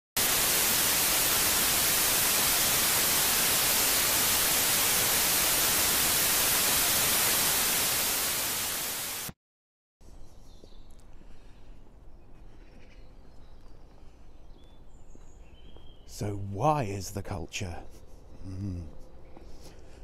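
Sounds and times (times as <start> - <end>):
white noise static hiss: 0.2 - 9.3.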